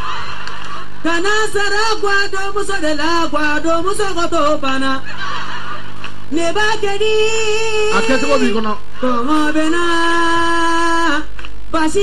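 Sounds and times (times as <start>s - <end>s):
noise burst: 0.0s - 12.0s.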